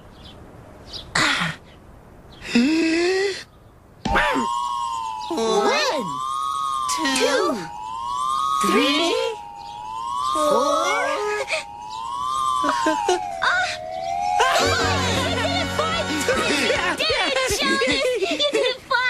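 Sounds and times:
wavering siren-like whistle: 4.1s - 16.6s
puppet voices calling out: 5.3s - 6.2s.

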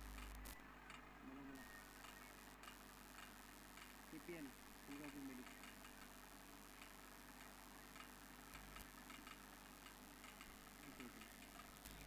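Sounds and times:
faint background hiss: 0.0s - 12.0s
faint clicks: 2.0s - 4.0s, 4.9s - 12.0s.

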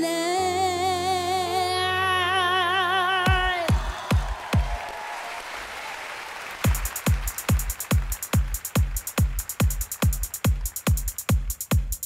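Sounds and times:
kick drum beats: 3.3s - 4.8s, 6.6s - 12.0s
audience applause: 3.7s - 11.6s
hi-hats: 6.6s - 12.0s.

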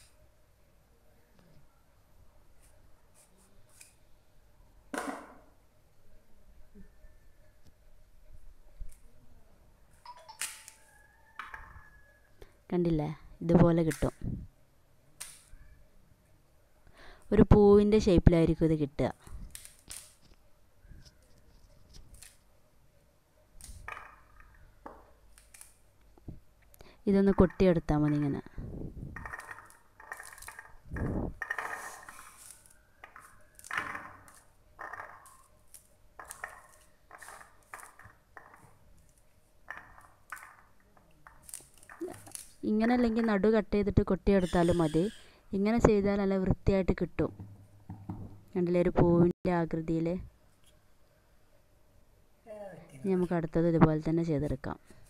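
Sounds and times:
fruit rind creaking and tearing: 25.2s - 25.8s, 29.2s - 42.6s
fruit rind cracking and tearing: 25.3s - 25.8s, 32.1s - 34.5s, 41.2s - 42.6s
seeds clicking onto a plate: 25.3s - 26.1s, 29.2s - 43.2s
dull knock: 47.3s - 48.4s.

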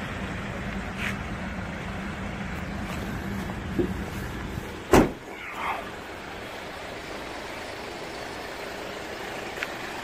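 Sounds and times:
van tailgate slamming shut: 4.8s - 5.4s.

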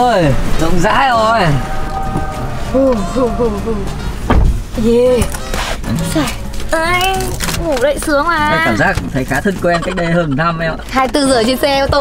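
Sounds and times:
dull thump: 4.2s - 4.8s.

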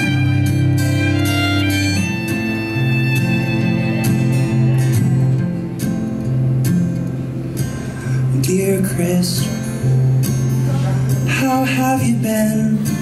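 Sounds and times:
fingerstyle acoustic guitar: 0.0s - 13.0s.

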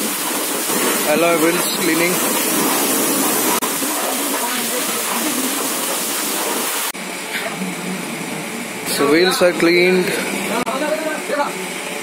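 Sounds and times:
wash bay hiss: 0.0s - 12.0s.

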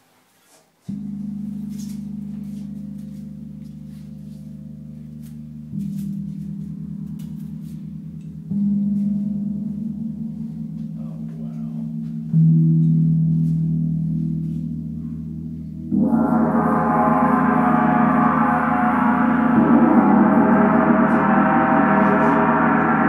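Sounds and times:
gong struck with mallet: 15.8s - 23.0s.

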